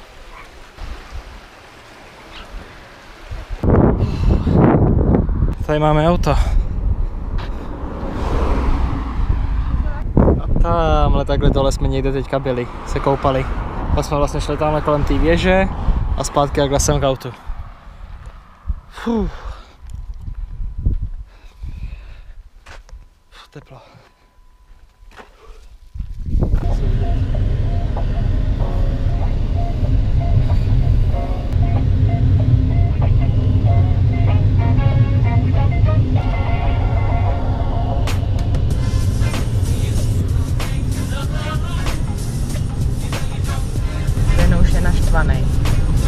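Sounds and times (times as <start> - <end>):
sea wash: 0.0 - 4.6
wind buffeting microphone: 2.4 - 23.1, 25.7 - 46.0
wind on camera microphone: 3.2 - 12.2, 13.3 - 19.0, 19.8 - 22.0, 25.8 - 27.1.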